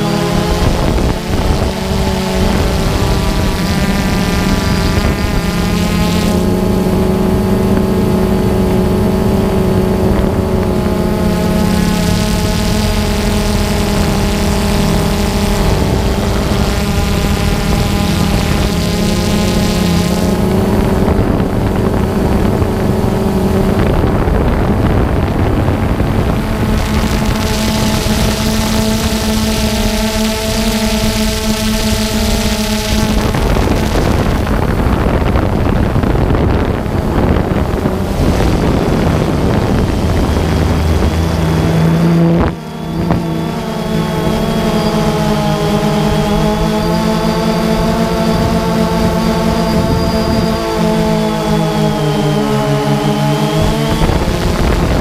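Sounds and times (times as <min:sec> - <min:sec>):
drone propellers whining: 0:00.0 - 0:55.0.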